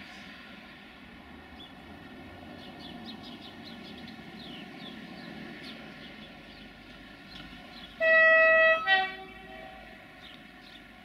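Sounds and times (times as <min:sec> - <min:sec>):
two-tone train horn: 0:08.0 - 0:10.0.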